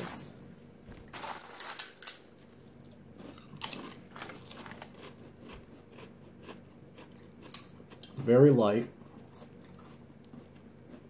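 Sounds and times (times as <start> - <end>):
potato chips crunching: 1.0 - 8.4, 9.0 - 11.0.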